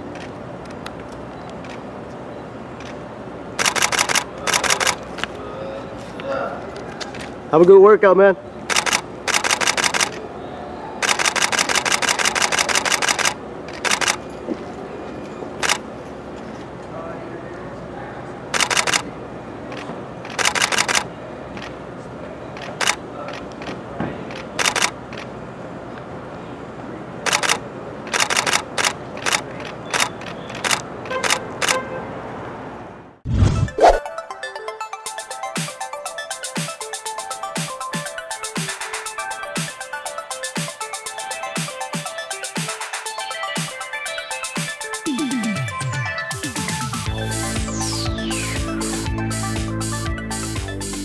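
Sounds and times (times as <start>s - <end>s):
city background hum: 0.0s - 51.0s
camera shutter clicking in bursts: 3.6s - 5.0s, 8.7s - 10.2s, 11.0s - 14.2s, 15.6s - 15.8s, 18.6s - 19.1s, 19.7s - 21.7s, 22.6s - 25.3s, 27.3s - 31.8s.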